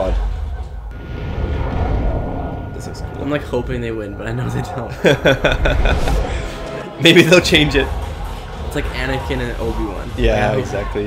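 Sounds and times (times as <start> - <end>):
rumble of fire and explosions: 0.0 - 11.0.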